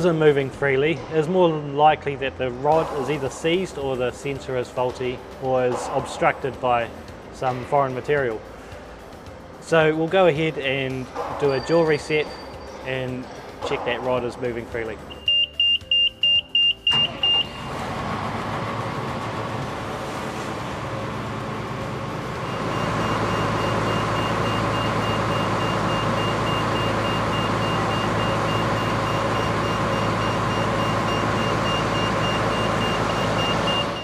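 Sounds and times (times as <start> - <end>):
quick high warning beeps: 15.1 - 17.6, 22.4 - 34.0
jaw crusher running: 16.9 - 34.0.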